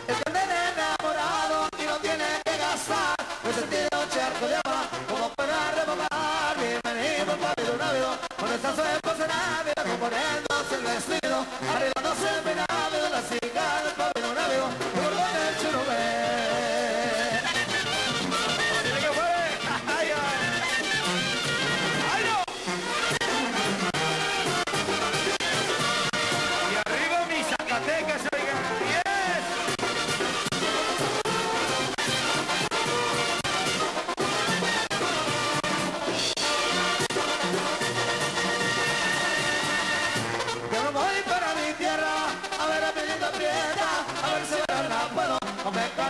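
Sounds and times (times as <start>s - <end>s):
brass band with trumpets and tuba: 0.0s - 46.0s.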